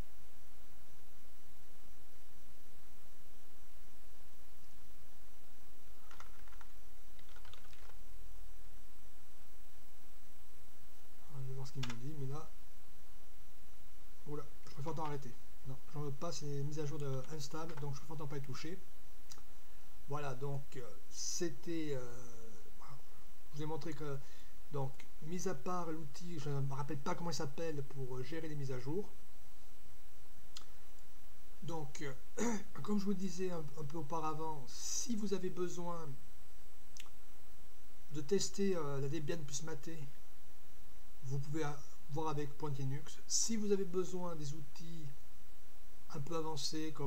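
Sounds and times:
steady low hum: 0.0s - 47.0s
keyboard typing: 6.0s - 8.0s.

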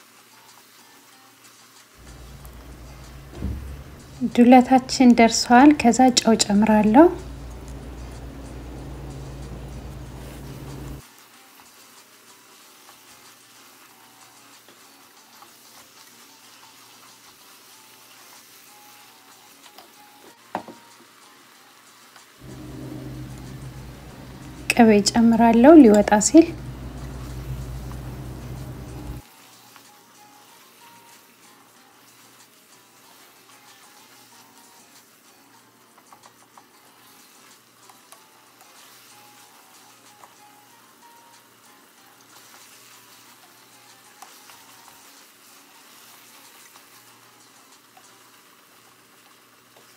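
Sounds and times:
meat sizzling in a pot: 0.0s - 49.9s
low hum: 2.0s - 11.0s, 22.4s - 29.2s.

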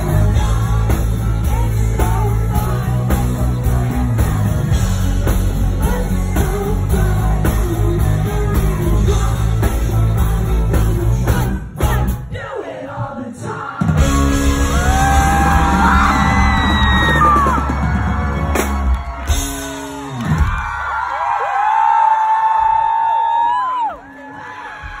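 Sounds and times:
crowd screaming and cheering: 0.0s - 12.2s, 13.8s - 25.0s
live rock band playing: 0.0s - 12.4s, 13.8s - 20.9s.

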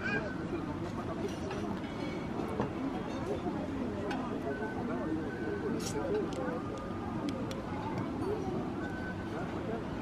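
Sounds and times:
murmur of diners' voices: 0.0s - 10.0s.

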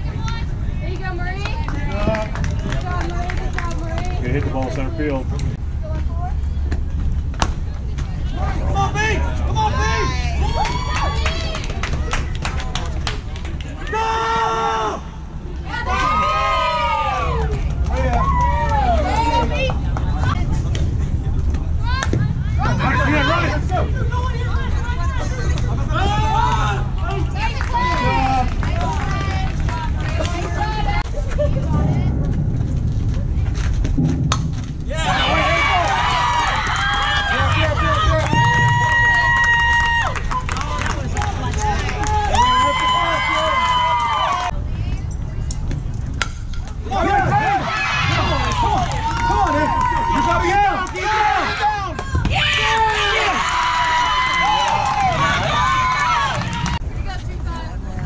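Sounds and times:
girls shouting and chanting cheers: 47.1s - 56.8s.

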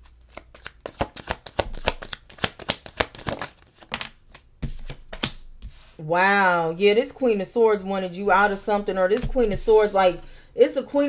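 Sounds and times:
cards being shuffled: 0.0s - 5.9s.

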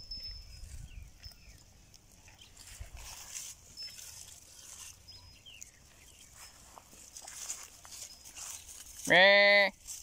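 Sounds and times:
goats rustling in grass: 0.0s - 10.0s.

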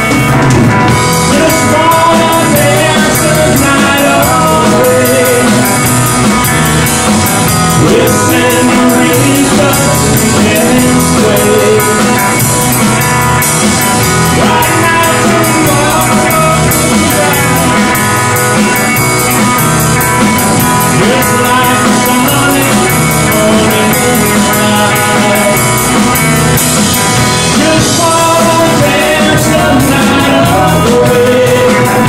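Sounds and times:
drum kit steady beat: 0.0s - 32.0s
electric guitar: 0.0s - 32.0s.

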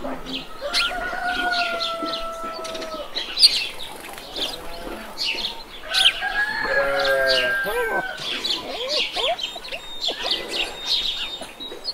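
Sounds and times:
small birds chirping: 0.0s - 11.9s
rooster crowing: 0.2s - 11.4s.

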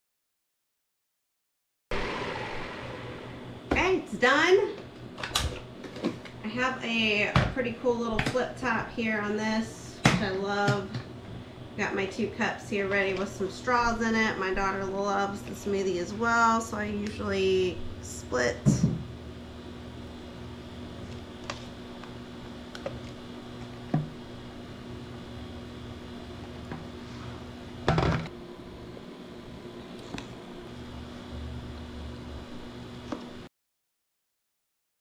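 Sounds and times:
faint steady hum: 2.0s - 33.5s.

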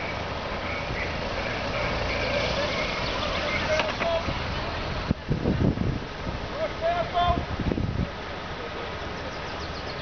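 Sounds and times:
motorcycles riding past: 0.0s - 5.1s
outdoor background hiss: 0.0s - 10.0s.

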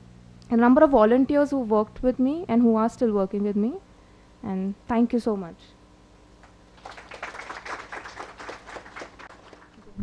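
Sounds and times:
audience applauding lightly: 6.4s - 10.0s.

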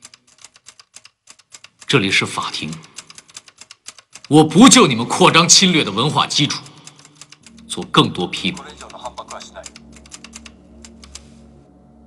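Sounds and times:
typewriter keys clacking: 0.0s - 4.8s.

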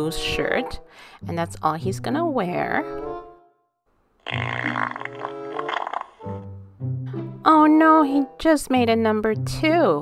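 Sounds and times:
background music: 0.0s - 10.0s
comic fart sound effect: 4.2s - 6.5s.

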